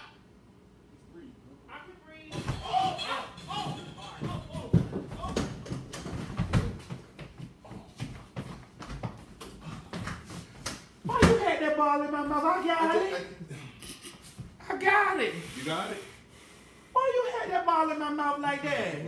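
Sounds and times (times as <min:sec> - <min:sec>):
muffled voices: 0:01.0 - 0:05.8
kitchen knocks and bangs: 0:02.3 - 0:06.9.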